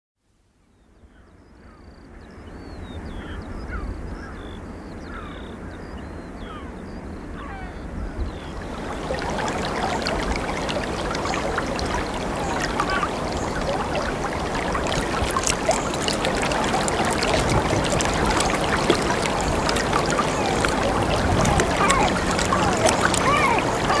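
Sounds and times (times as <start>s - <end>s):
birds calling: 7.4s - 24.0s
water lapping and splashing: 8.3s - 24.0s.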